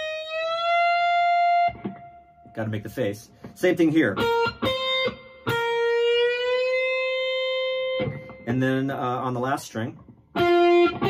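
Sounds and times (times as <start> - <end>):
electric guitar note bending: 0.0 - 2.7, 3.3 - 8.9, 10.0 - 11.0.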